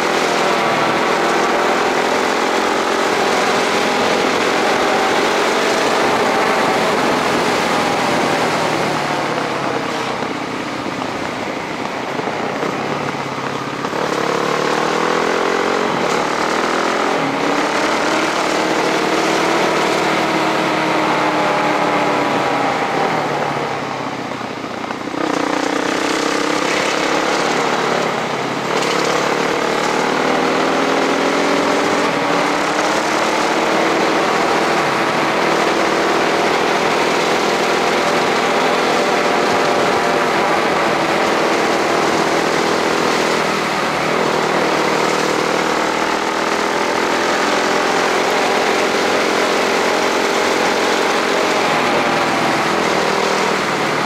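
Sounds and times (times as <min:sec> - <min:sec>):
vehicle engine: 0:00.0 - 0:54.0
wind and road noise: 0:00.0 - 0:54.0.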